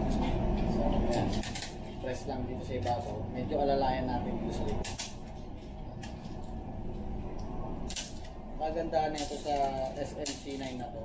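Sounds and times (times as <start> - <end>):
steady low rumble: 0.0 - 10.2.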